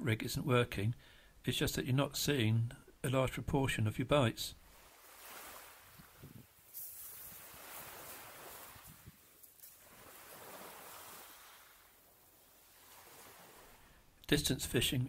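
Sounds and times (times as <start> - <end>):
small waves on shingle: 4.7 - 14.0
wind on microphone: 5.9 - 6.6, 7.2 - 9.2.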